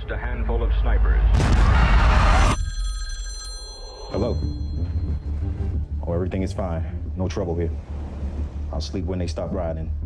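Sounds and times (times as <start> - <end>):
old telephone bell ringing: 2.5 - 5.3.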